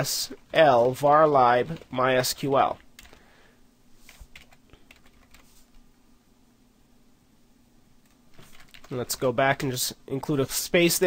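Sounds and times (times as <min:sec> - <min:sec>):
computer keyboard typing: 0:02.7 - 0:03.2, 0:04.1 - 0:05.6, 0:08.0 - 0:09.0.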